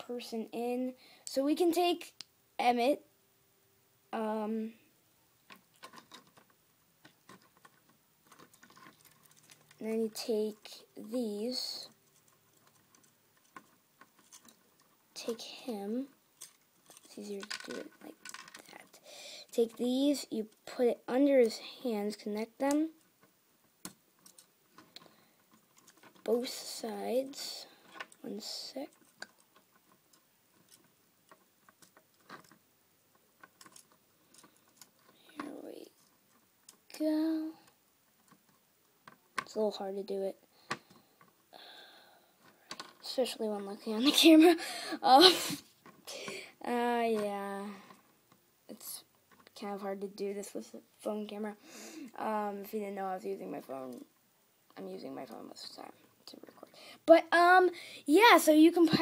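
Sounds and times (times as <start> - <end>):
soft hiss: 0.0 - 59.0
plastic pieces clicking: 5.5 - 9.8, 11.9 - 15.0, 16.4 - 19.0, 22.6 - 26.3, 28.8 - 36.9
plastic toy bricks clicking: 12.0 - 14.9, 16.4 - 18.9, 23.8 - 26.3, 33.4 - 35.4.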